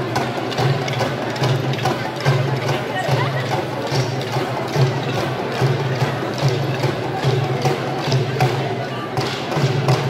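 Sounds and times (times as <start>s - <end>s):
hand drums steady beat: 0.0s - 10.0s.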